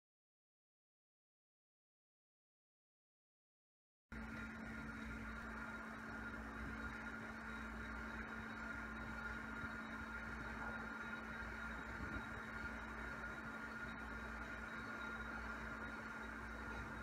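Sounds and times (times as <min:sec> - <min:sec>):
steady hum: 0:04.1 - 0:17.0.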